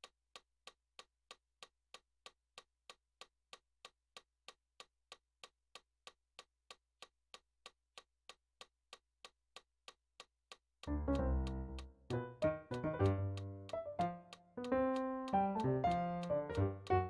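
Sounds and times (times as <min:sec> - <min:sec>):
metronome clicking: 0:10.8 - 0:17.0.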